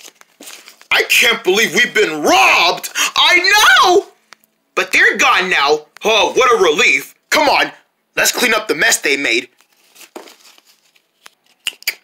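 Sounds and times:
paper rustling: 0.0s - 0.9s, 9.5s - 11.8s.

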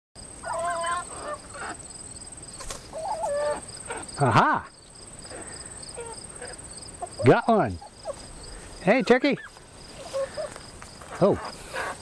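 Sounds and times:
high insect trill: 0.2s - 12.0s
turkey calls: 0.4s - 1.9s, 2.6s - 12.0s.

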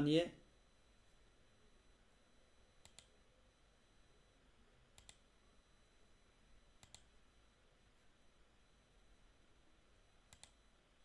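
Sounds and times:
computer mouse button clicks: 2.8s - 3.1s, 5.0s - 5.2s, 6.8s - 7.1s, 10.3s - 10.6s.

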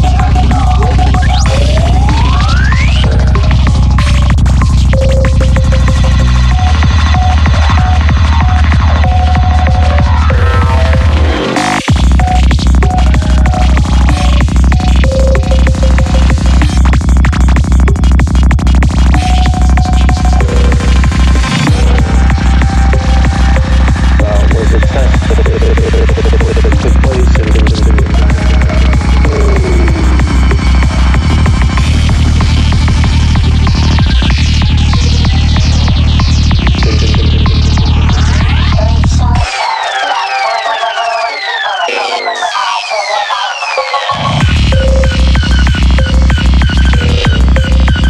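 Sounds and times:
fast kick drum: 0.0s - 11.2s, 11.9s - 39.5s, 44.4s - 48.0s
rolling bass line: 0.0s - 39.5s, 44.2s - 48.0s.

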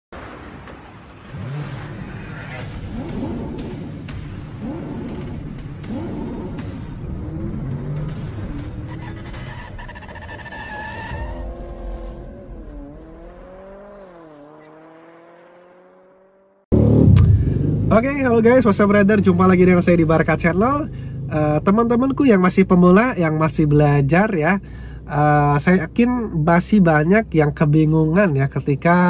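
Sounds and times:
car engine revving: 0.2s - 22.1s
music: 2.6s - 9.8s
high squeal: 8.9s - 11.7s
sharp hits: 16.7s - 17.9s.

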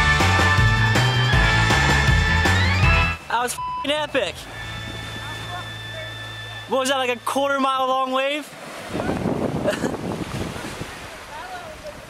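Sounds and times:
background music: 0.0s - 7.6s
censor bleep: 3.6s - 6.8s.

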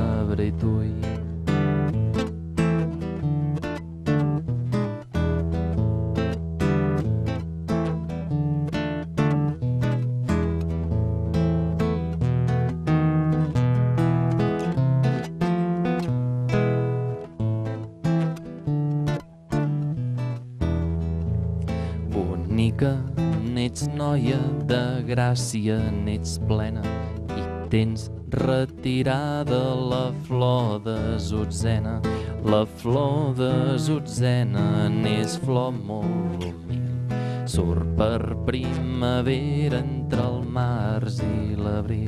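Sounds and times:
classical guitar playing: 0.0s - 42.0s.

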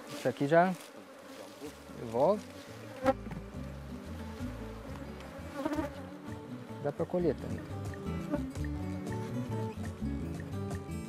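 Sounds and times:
bees buzzing: 0.0s - 10.8s.

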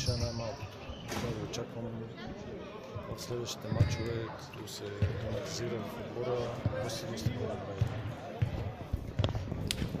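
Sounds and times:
basketballs bouncing: 6.6s - 10.0s.

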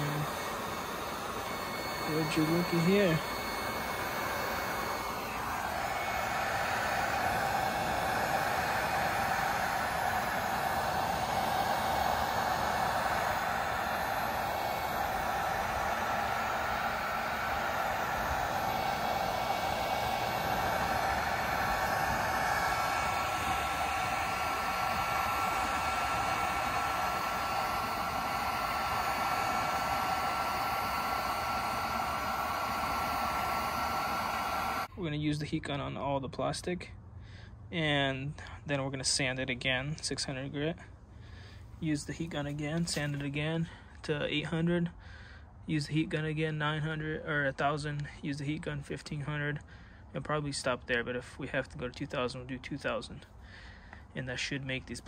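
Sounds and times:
heat gun blowing air: 0.0s - 34.9s, 41.3s - 44.0s.

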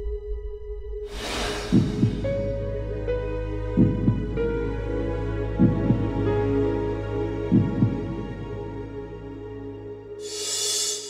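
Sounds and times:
sad sustained background music: 0.0s - 11.0s
heartbeat double thump: 1.4s - 2.8s, 3.7s - 4.6s, 5.6s - 6.3s, 7.5s - 8.4s.

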